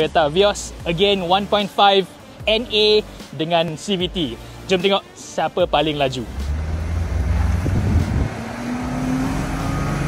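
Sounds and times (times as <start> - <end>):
car engines accelerating hard: 6.1 - 10.0
rushing noise: 6.4 - 10.0.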